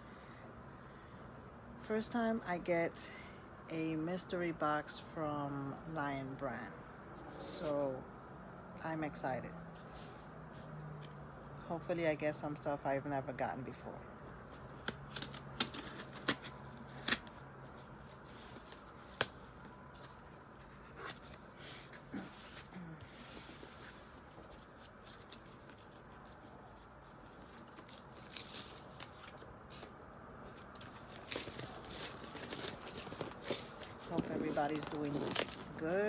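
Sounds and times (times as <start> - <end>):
cardboard box clicks and crackles: 14.5 - 17.4, 30.5 - 35.8
tearing rustle: 14.5 - 29.9, 30.5 - 35.8.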